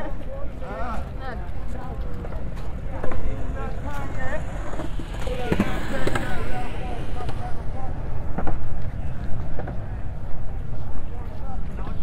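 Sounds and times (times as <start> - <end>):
indistinct talk of passers-by: 0.0 - 12.0
wind rumbling on microphone: 1.5 - 11.8.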